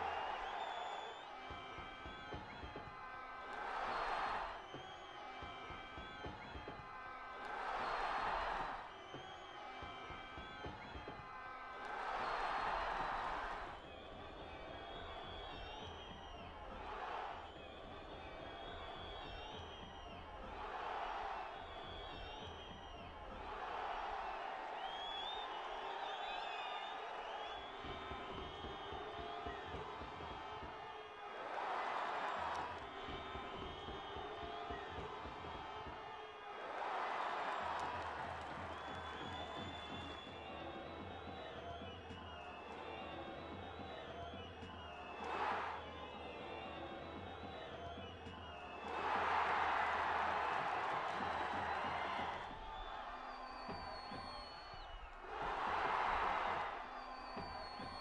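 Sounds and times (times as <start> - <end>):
crowd cheering: 0.0 - 58.0
stadium crowd din: 0.0 - 58.0.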